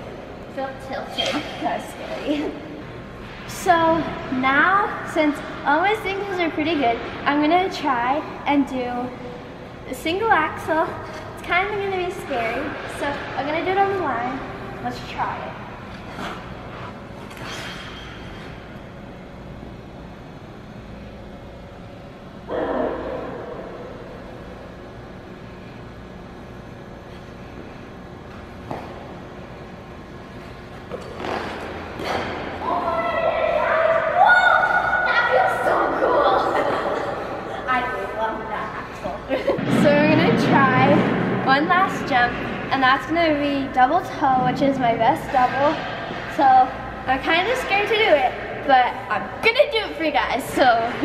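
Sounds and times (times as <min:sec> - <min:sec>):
girl's voice: 0:46.3 - 0:51.0.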